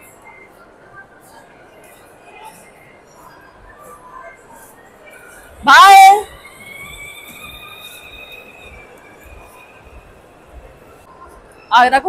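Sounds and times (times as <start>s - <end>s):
electric toy motor whine: 6.3s - 9.6s.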